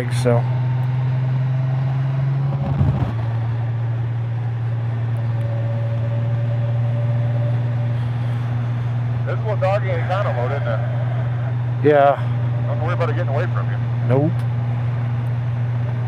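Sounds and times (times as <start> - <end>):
motorcycle engine drone: 0.0 - 16.0
wind and road noise: 0.0 - 16.0.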